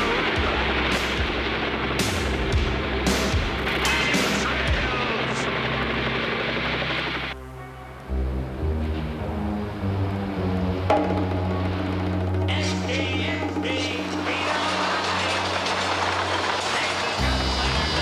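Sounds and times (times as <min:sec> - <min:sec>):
music with long held notes: 0:00.0 - 0:18.0
small plane engine: 0:00.0 - 0:18.0.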